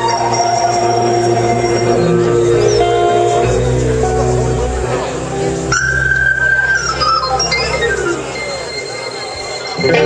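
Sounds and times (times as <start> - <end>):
low bass: 0.0 - 8.8
live band music: 0.0 - 10.0.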